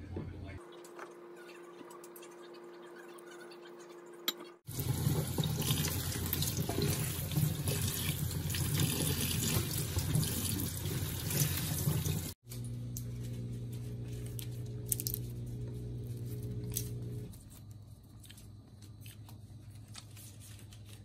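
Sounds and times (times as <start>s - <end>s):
faucet water running on leaves: 4.7s - 12.4s.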